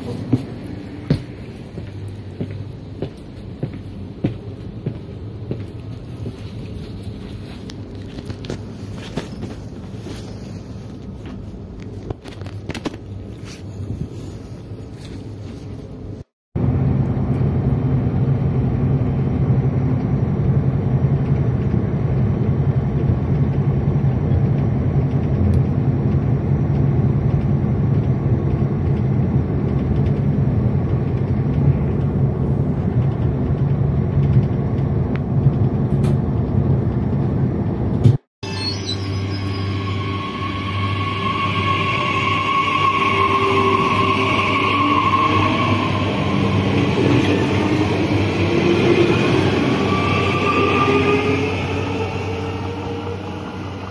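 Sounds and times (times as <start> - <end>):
train rumble: 0.0 - 53.9.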